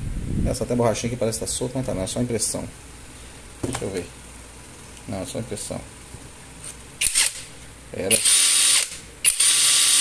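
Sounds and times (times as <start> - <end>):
impact driver motor whining: 8.1 - 10.0.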